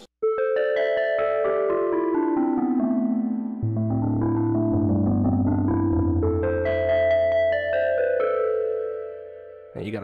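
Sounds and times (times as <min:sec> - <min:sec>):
electric piano-like keyboard: 0:00.2 - 0:10.0
synthesizer pad: 0:00.7 - 0:09.7.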